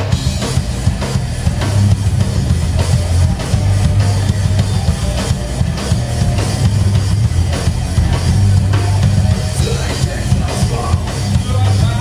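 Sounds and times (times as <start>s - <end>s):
heavy bass drum beat: 0.0s - 12.0s
heavy rock band playing: 0.0s - 12.0s.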